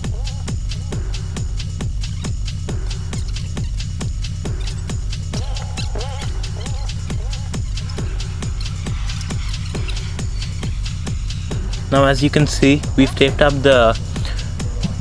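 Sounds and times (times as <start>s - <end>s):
electronic music with steady beat: 0.0s - 15.0s.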